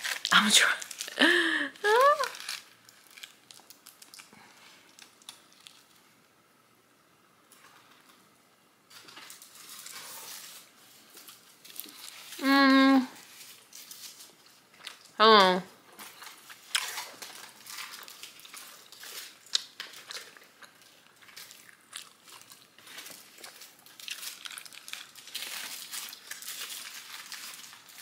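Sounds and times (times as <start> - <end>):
aluminium foil crinkling: 0.0 - 6.2, 8.9 - 28.0
person humming mmm: 12.4 - 13.2.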